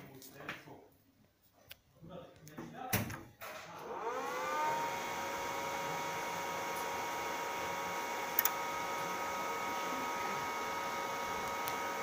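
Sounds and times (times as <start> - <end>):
cooling fan whirring: 3.8 - 12.0.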